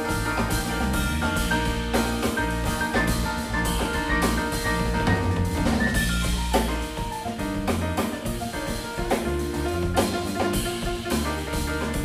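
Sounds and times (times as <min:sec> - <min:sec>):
jazz band playing: 0:00.0 - 0:12.0
steady drumming: 0:00.0 - 0:12.0.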